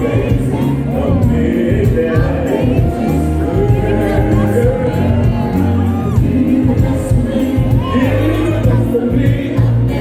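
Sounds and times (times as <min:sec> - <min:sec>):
live band music through pa: 0:00.0 - 0:10.0
many voices singing together: 0:00.0 - 0:10.0
steady bass pulse: 0:00.0 - 0:10.0.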